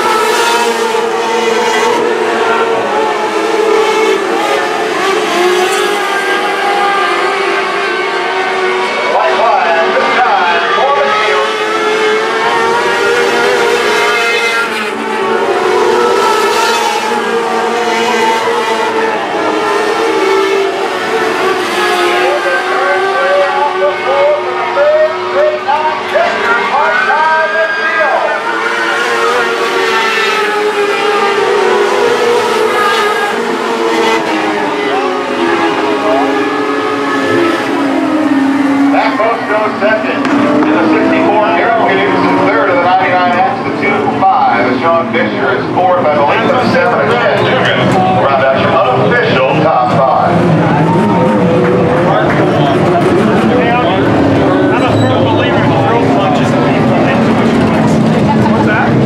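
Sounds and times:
race car engines at high revs: 0.0s - 59.0s.

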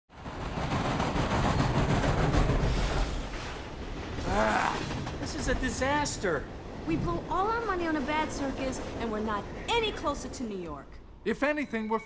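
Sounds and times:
steam locomotive chuffing: 0.1s - 10.6s
wheels clattering on rails: 0.1s - 10.9s.

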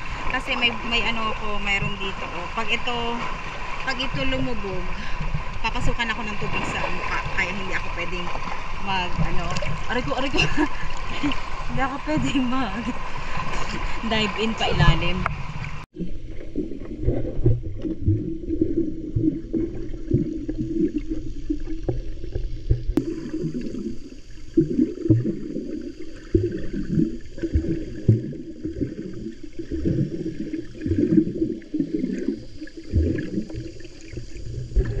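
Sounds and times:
swimming swishes: 0.0s - 35.0s
water sloshing underwater: 0.0s - 35.0s.

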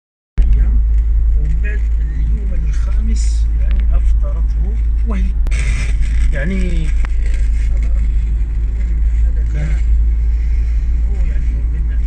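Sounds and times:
voice speaking through car radio: 0.4s - 10.0s, 10.9s - 12.0s
steady low rumble: 0.4s - 12.0s.

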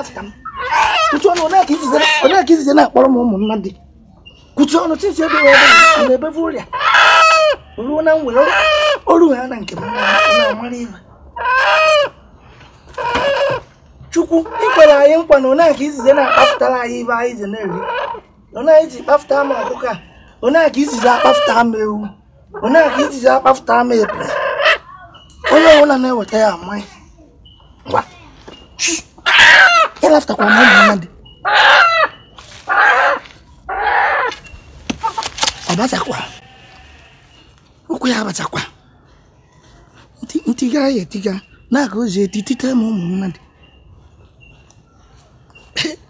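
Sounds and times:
chicken squawking: 0.0s - 2.6s, 5.1s - 9.2s, 9.8s - 12.2s, 12.9s - 13.7s, 14.4s - 16.8s, 17.6s - 18.3s, 19.2s - 20.2s, 20.8s - 21.9s, 22.6s - 25.8s, 29.2s - 37.0s.

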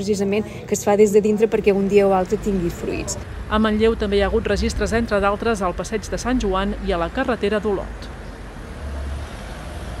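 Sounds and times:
road traffic: 0.0s - 10.0s
low vehicle rumble: 2.2s - 10.0s.

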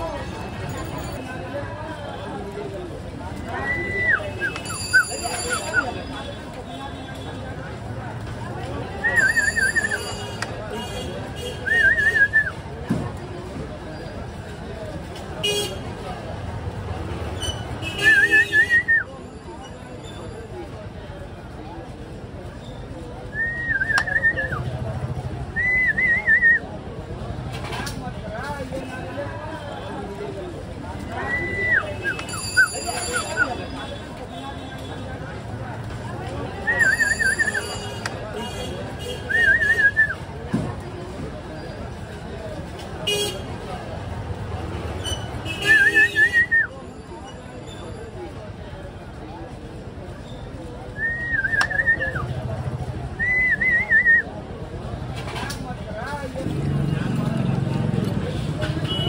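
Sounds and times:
faint voices: 0.0s - 59.0s
low hum of street noise: 0.0s - 59.0s.

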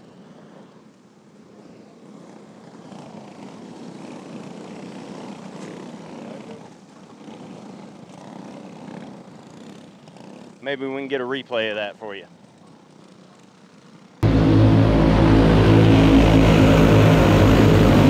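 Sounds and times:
kart engines droning: 1.6s - 18.0s.

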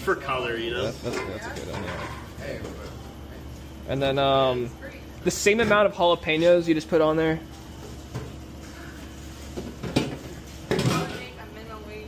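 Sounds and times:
metal pans and utensils clinking: 1.0s - 2.3s.

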